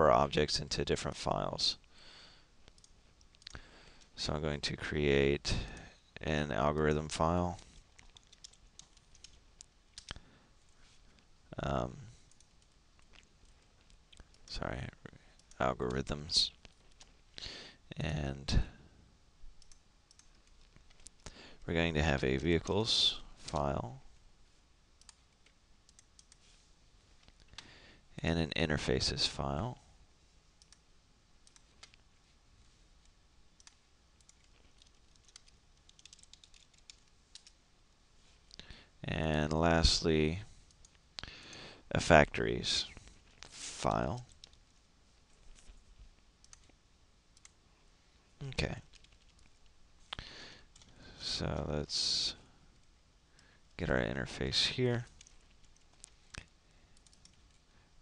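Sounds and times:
computer mouse clicks: 2.6 - 4.1, 7.9 - 10.2, 12.3 - 14.5, 19.6 - 21.3, 25.0 - 26.4, 30.6 - 30.8, 31.4 - 32.0, 33.0 - 37.6, 46.4 - 46.8, 47.4 - 47.6, 55.2 - 57.6
keyboard typing: 7.9 - 10.2, 19.6 - 21.3, 25.0 - 26.4, 33.6 - 37.6, 46.4 - 46.8, 48.4 - 49.6, 55.1 - 57.6.

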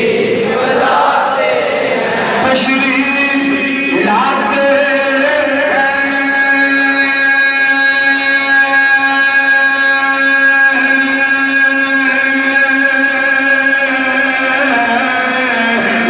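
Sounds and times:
devotional chanting: 0.0 - 16.0.

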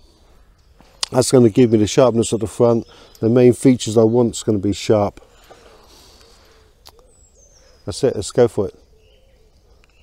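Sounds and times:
faint hooting bird calls: 0.0 - 10.0.

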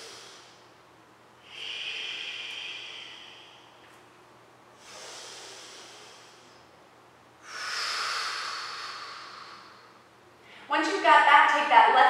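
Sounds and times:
woman exhaling: 0.0 - 0.6, 1.4 - 3.8, 7.4 - 10.7
soft inhale: 0.0 - 0.8, 1.4 - 4.0, 4.7 - 6.8, 7.4 - 10.7.

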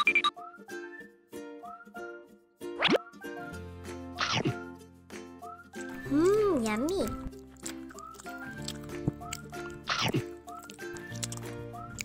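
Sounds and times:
light children's background music: 0.0 - 12.0.

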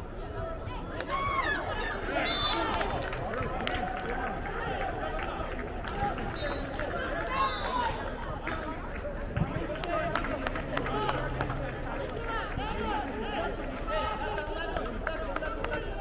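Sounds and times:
background murmur: 0.0 - 16.0
players and spectators shouting: 0.1 - 8.8, 9.6 - 16.0.

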